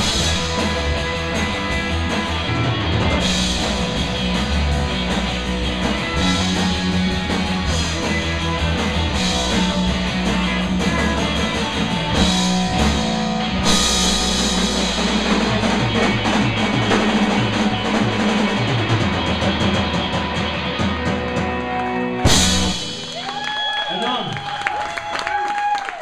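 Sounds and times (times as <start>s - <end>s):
fast drum strokes: 0.0s - 21.6s, 22.2s - 23.4s
live rock band playing: 0.0s - 24.2s
loud cymbal crash: 12.8s - 16.0s.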